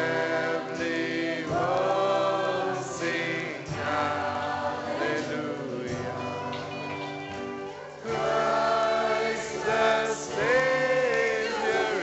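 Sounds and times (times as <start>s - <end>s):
worship band playing: 0.0s - 12.0s
woman singing: 3.6s - 7.7s, 10.6s - 12.0s.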